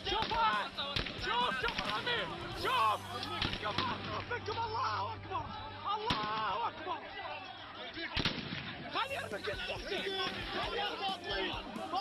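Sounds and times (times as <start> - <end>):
gunshots: 0.0 - 2.2, 3.2 - 4.2, 6.1 - 6.5, 8.1 - 9.0
people shouting: 0.0 - 12.0.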